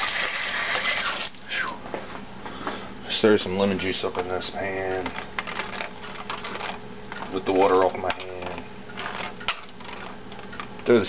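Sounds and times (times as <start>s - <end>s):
hand handling aluminium foil pan: 5.0s - 10.2s.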